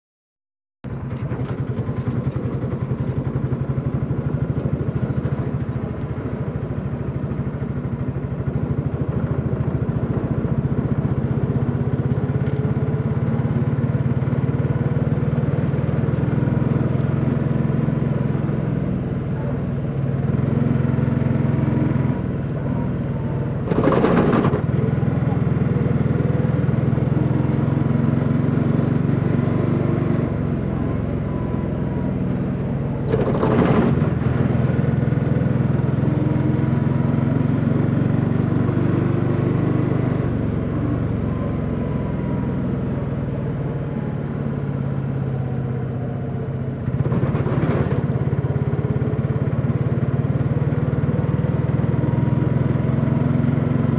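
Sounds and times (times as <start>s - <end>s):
vehicle engine running: 0.8s - 53.9s.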